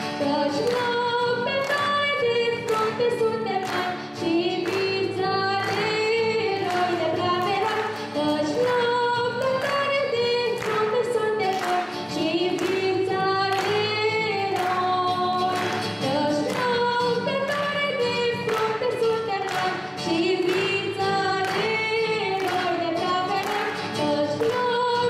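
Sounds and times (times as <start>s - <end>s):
acoustic guitar: 0.0s - 25.0s
woman singing into microphone: 0.0s - 25.0s.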